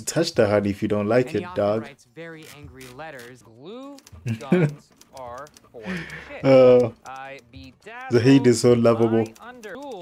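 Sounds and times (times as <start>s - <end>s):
voices: 0.4s - 10.0s
typewriter keys clacking: 3.9s - 10.0s.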